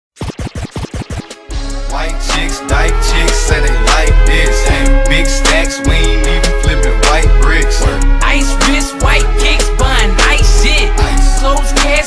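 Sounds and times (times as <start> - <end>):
turntable scratches: 0.1 - 1.5
hip hop beat with deep bass: 0.2 - 12.0.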